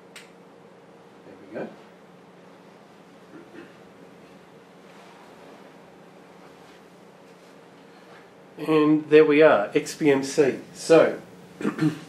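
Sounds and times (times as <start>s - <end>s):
low hum and hiss: 0.0s - 12.0s.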